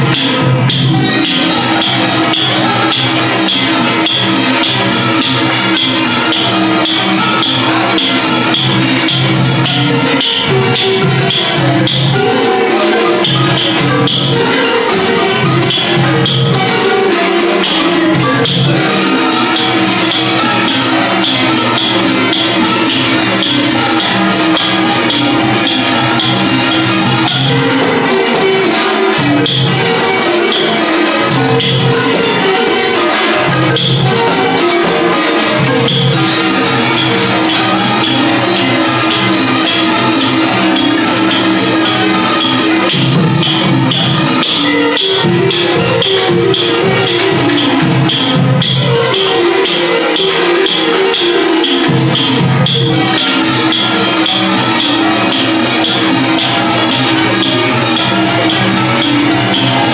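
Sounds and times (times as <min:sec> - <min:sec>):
barrel drums beating: 0:00.0 - 0:59.9
hammered dulcimers: 0:00.0 - 0:59.9
wooden xylophones: 0:00.0 - 0:59.9.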